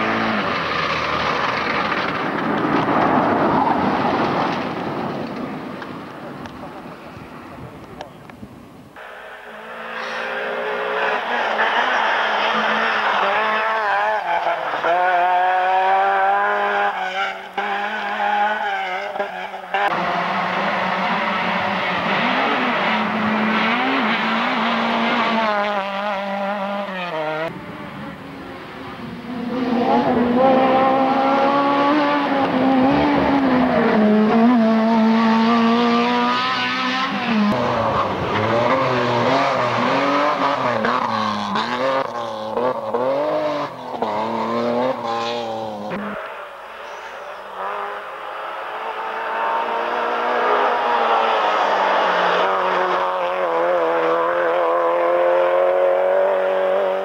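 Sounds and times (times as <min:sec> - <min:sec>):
rally car engines revving: 0:00.0 - 0:08.4, 0:09.0 - 0:57.0.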